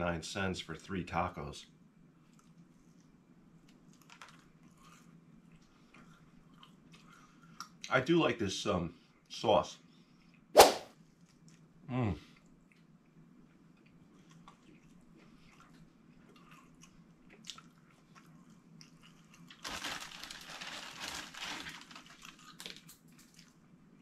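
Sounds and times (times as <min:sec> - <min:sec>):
faint eating sounds: 0:00.0 - 0:24.0
plastic chip bag crinkling: 0:03.9 - 0:04.6, 0:19.4 - 0:23.6.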